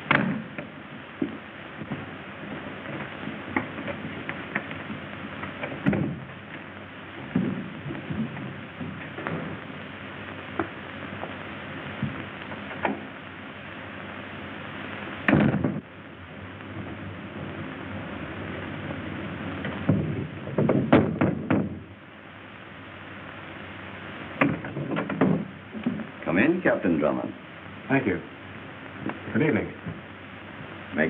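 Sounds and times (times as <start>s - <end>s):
film soundtrack hiss: 0.0s - 31.0s
knocks and thuds: 5.6s - 6.2s, 7.3s - 9.6s, 15.3s - 15.8s, 19.9s - 21.8s, 24.4s - 26.1s.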